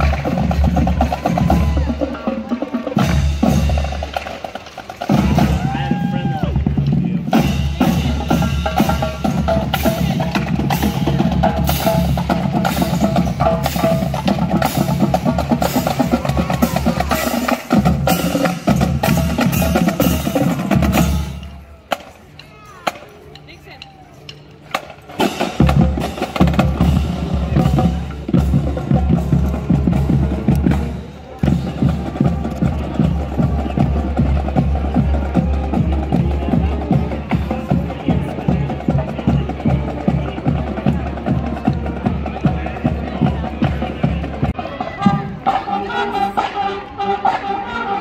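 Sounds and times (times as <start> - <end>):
bass and snare drums: 0.0 - 45.7
marching band playing: 0.0 - 48.0.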